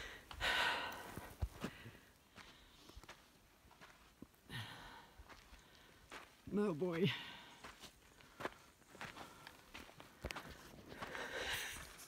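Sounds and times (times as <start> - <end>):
person breathing hard: 0.0 - 2.8, 4.5 - 6.2, 10.9 - 12.0
faint footsteps: 0.0 - 12.0.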